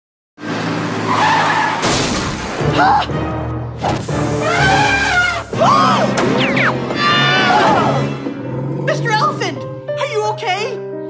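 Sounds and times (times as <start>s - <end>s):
tyres screeching in a skid: 0.9s - 2.0s.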